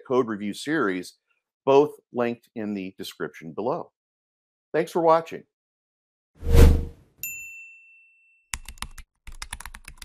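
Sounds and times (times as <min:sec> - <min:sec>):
short whoosh: 0:06.4 - 0:06.9
bright ding: 0:07.2 - 0:08.5
keyboard typing clicks: 0:08.6 - 0:10.0.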